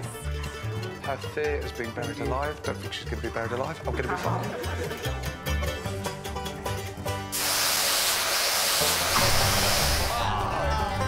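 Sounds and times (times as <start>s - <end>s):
steam whistle hissing blast: 7.4s - 10.2s.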